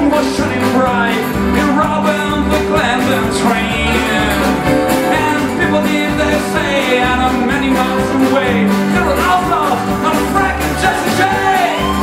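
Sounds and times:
accordion: 0.0 - 12.0
acoustic guitars strumming: 0.0 - 12.0
upright bass: 0.0 - 12.0
wavering lead melody: 2.9 - 8.0.

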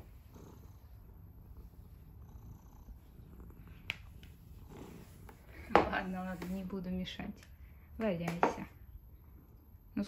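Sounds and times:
cat purring: 0.0 - 7.2.

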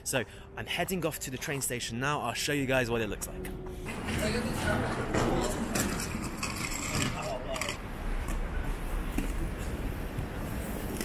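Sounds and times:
people talking: 0.0 - 3.5, 6.9 - 7.8
traffic rumble: 0.0 - 11.0.

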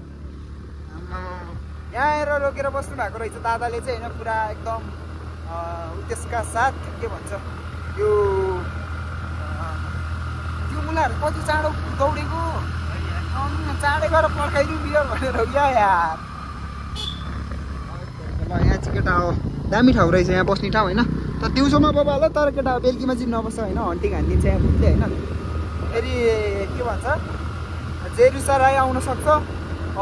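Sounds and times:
motorcycle engine drone: 0.0 - 30.0
man talking: 10.6 - 16.2, 17.9 - 25.2, 25.9 - 27.2.

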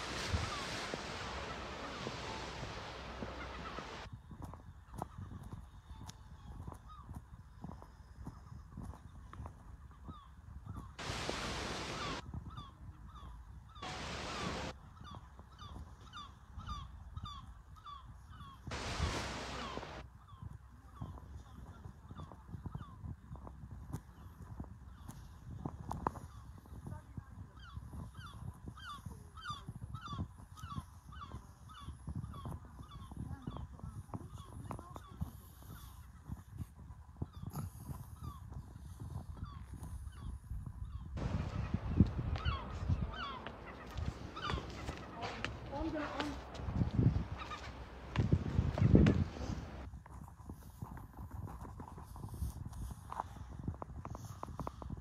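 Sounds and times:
bird honking calls: 0.0 - 4.1, 13.8 - 14.7, 18.7 - 20.0, 41.2 - 48.1
low rumbling noise: 11.0 - 12.2, 13.8 - 14.7
soft footsteps: 41.2 - 54.5.

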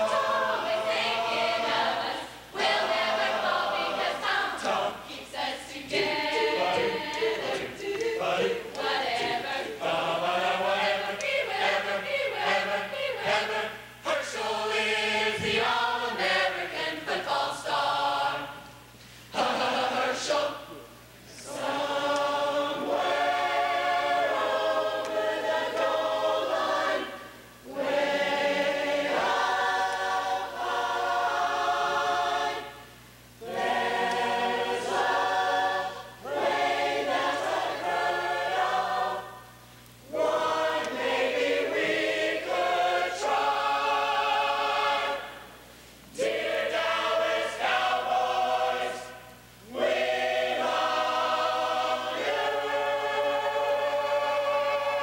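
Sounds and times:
large choir singing: 0.0 - 55.0.

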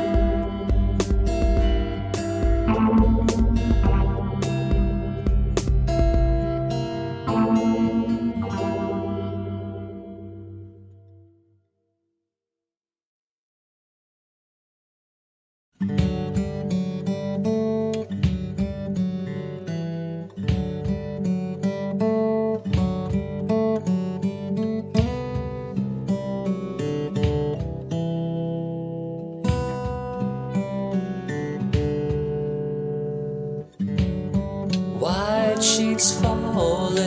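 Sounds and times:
acoustic guitar picking: 0.0 - 11.1, 15.8 - 37.0
person singing: 35.0 - 37.0.

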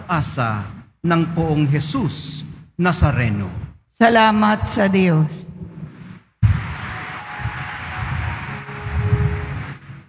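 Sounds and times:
crowd rustling and murmur: 5.8 - 10.0.

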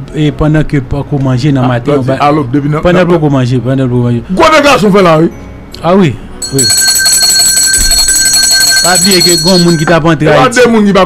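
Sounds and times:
loud trilling ringing tone: 6.4 - 10.1
person speaking: 8.8 - 10.7.

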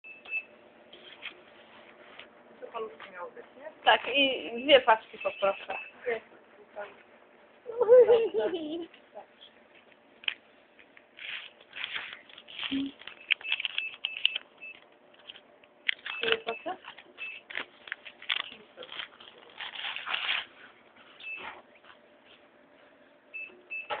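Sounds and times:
cash register beeps: 5.2 - 6.0, 13.1 - 14.8, 16.0 - 17.5, 21.2 - 21.6, 23.4 - 24.0.

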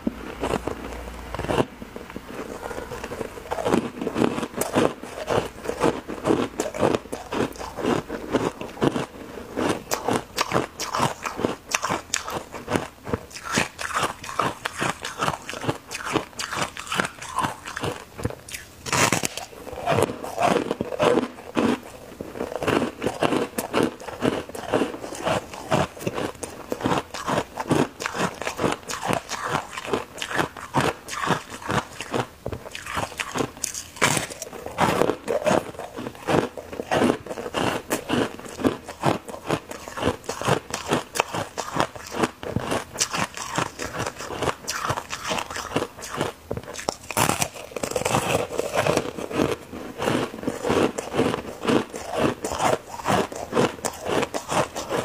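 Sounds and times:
crunching foam ice sticks: 0.3 - 55.0.

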